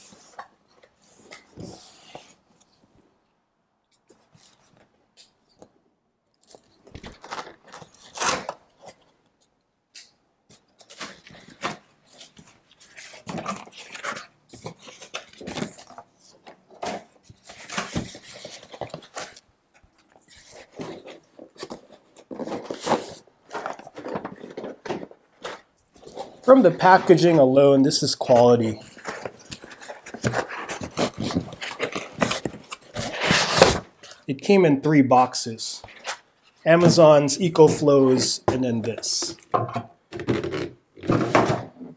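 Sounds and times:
cardboard scraping and rustling: 20.2 - 27.6, 28.6 - 34.2.

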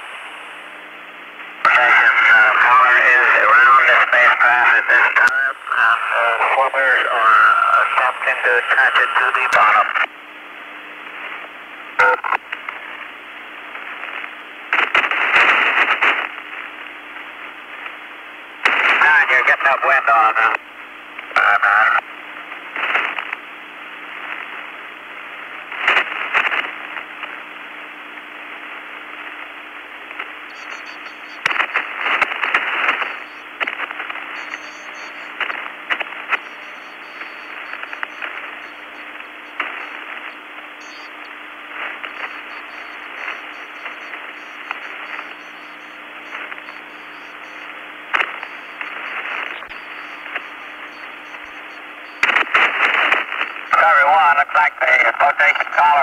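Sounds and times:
radio crackles and clicks: 0.0 - 56.0
radio static hiss: 0.0 - 56.0
low hum: 23.7 - 53.8.

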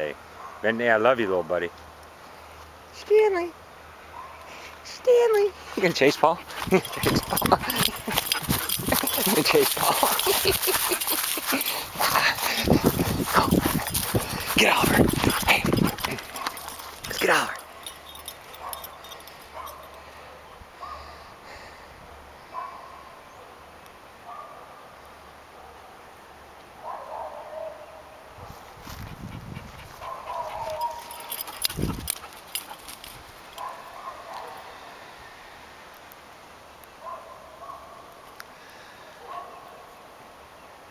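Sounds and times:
dogs scuffling and thudding: 5.6 - 19.4, 28.8 - 33.8.

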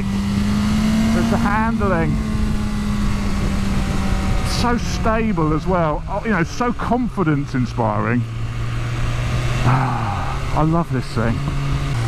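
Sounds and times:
motorcycle engine at steady revs: 0.0 - 12.0
wind rush: 1.6 - 6.3.

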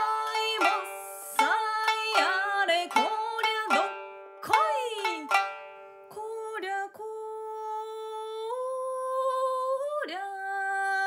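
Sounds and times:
woman singing long held note: 0.0 - 5.4.

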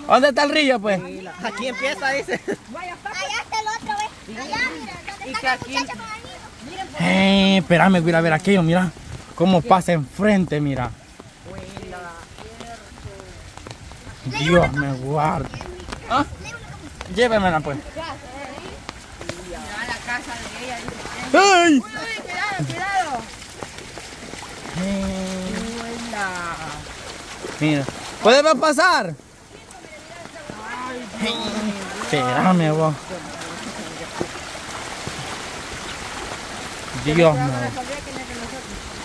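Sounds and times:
floodwater running: 0.0 - 39.0
rain hissing: 0.0 - 39.0
bare feet splashing in water: 1.2 - 39.0
voices talking quietly: 29.4 - 34.6.

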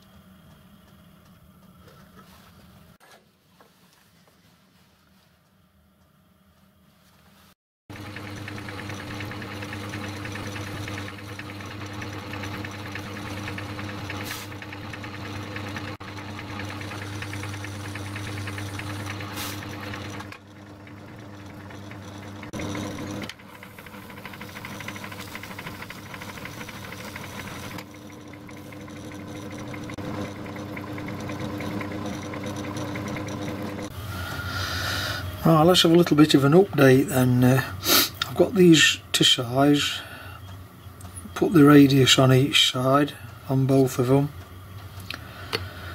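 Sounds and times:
metal lathe motor hum: 7.9 - 45.9.

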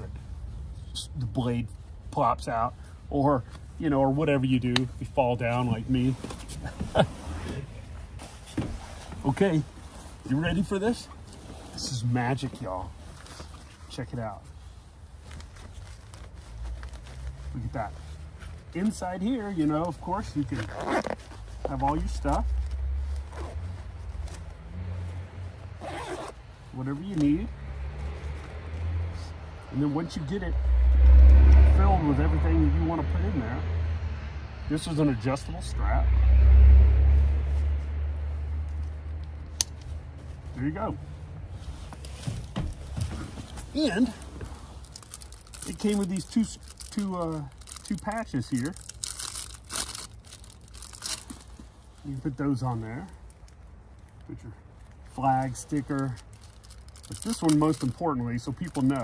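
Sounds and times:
fabric bag rustling: 41.5 - 52.0
plastic packet crinkling: 43.8 - 51.6, 56.0 - 58.0.

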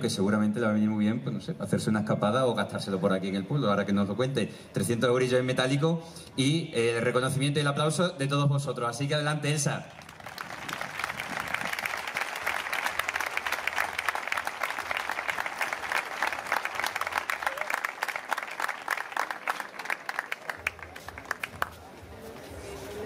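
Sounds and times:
audience applauding: 9.9 - 21.9.

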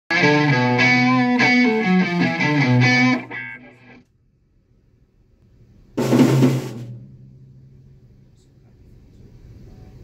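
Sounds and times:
drum kit hits: 6.0 - 7.8
faint low hum: 6.8 - 10.0.

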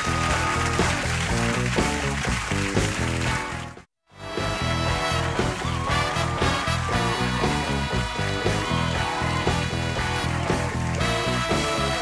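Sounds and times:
upbeat band music: 0.0 - 12.0.

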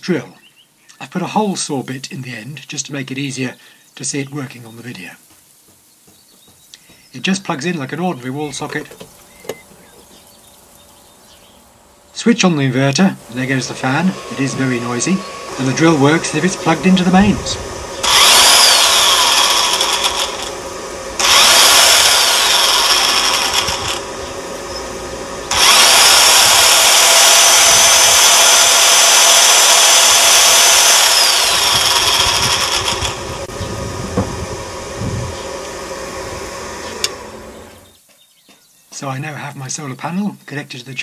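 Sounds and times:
inverter cooling fan: 1.0 - 38.0
electric drill motor whine: 12.8 - 38.0.

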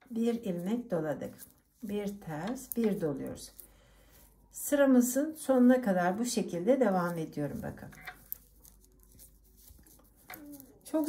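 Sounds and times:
knitting needles clicking: 0.0 - 4.3, 6.0 - 11.0
yarn rustling: 0.0 - 11.0.

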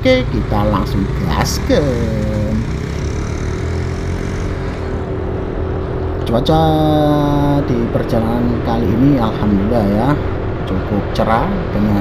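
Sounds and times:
scooter engine running: 0.0 - 5.7.

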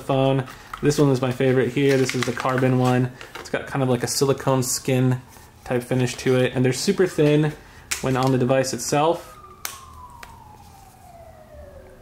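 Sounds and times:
faint siren wail: 4.7 - 12.0.

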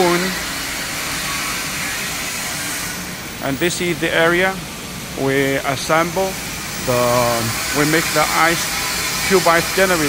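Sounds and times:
factory background hiss: 0.0 - 10.0.

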